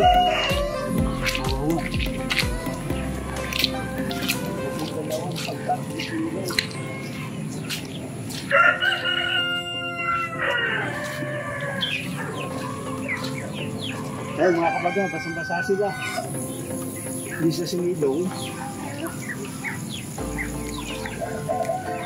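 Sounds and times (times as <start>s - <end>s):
rooster crowing: 0.0s - 1.0s, 8.4s - 12.8s, 14.0s - 16.4s, 21.2s - 22.0s.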